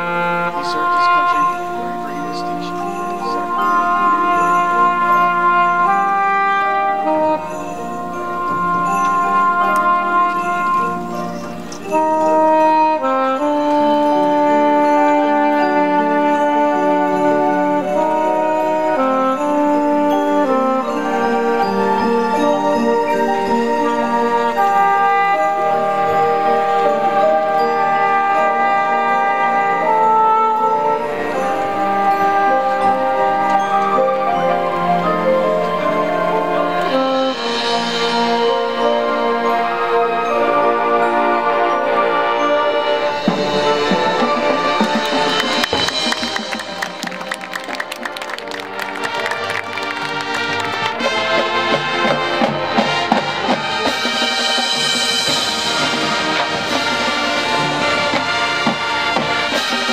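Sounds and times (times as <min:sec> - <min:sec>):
saxophone solo: 0:00.0 - 0:54.5
sustained brass chords: 0:00.0 - 0:59.9.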